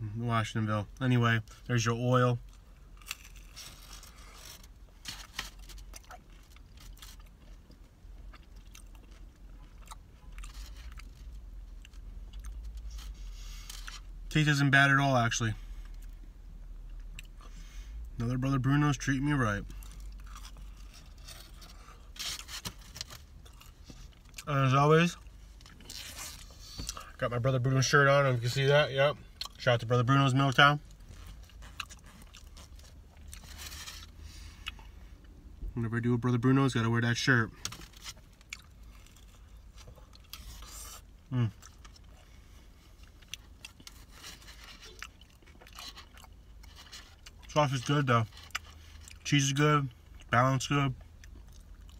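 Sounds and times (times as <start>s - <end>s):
pizza crust crunch: 1.4s - 14.4s, 18.2s - 28.8s, 29.4s - 34.8s, 36.6s - 51.9s
chewing pizza: 2.4s - 14.1s, 19.6s - 27.2s, 30.5s - 34.9s, 37.6s - 49.3s, 50.9s - 51.9s.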